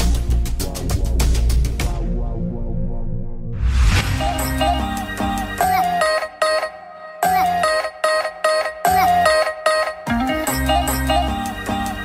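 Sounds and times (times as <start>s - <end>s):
pop band playing: 4.1s - 12.0s.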